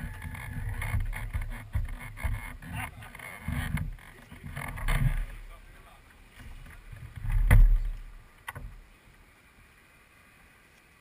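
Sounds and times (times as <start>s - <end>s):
wind buffeting microphone: 0.0s - 5.4s.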